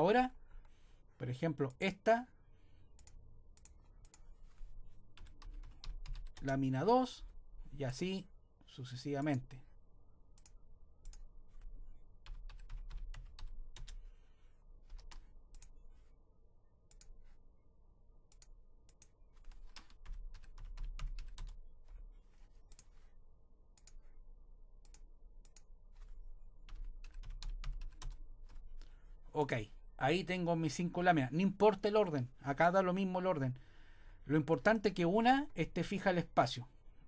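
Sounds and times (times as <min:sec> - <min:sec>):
typing on computer keyboard: 0:05.1 - 0:06.5, 0:10.4 - 0:14.0, 0:14.8 - 0:15.8, 0:18.3 - 0:21.6, 0:26.7 - 0:28.9.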